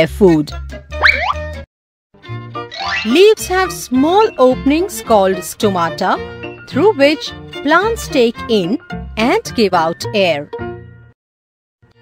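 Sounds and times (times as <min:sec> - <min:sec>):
background music: 0:00.0 - 0:11.2
cartoon rising pitch slide: 0:01.0 - 0:01.5, 0:02.7 - 0:03.2.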